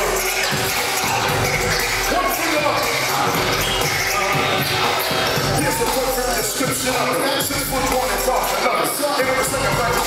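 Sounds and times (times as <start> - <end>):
crowd noise: 0.0 - 10.0
hip-hop music through pa: 0.0 - 10.0.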